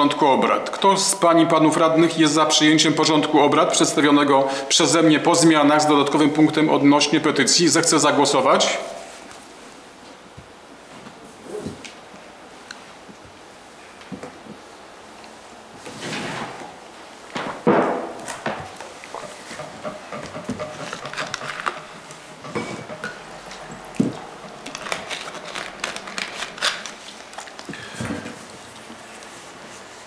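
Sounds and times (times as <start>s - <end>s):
rustling handling noises: 17.0s - 30.0s.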